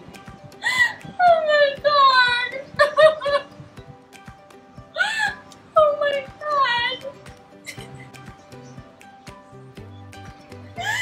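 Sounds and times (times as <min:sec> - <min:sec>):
soft music with steady beat: 0:00.0 - 0:11.0.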